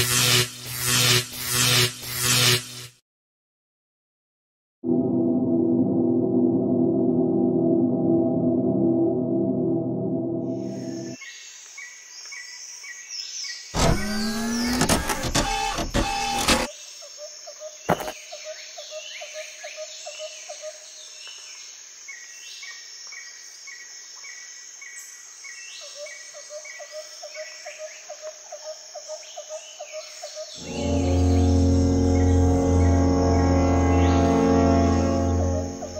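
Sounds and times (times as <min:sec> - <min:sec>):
insects: 0:10.7 - 0:13.7, 0:16.6 - 0:35.9.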